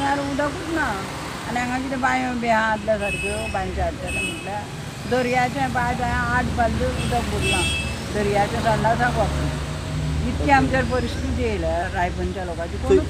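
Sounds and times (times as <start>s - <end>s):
people talking: 0.0s - 9.5s, 10.2s - 13.0s
road traffic rumble: 0.0s - 13.0s.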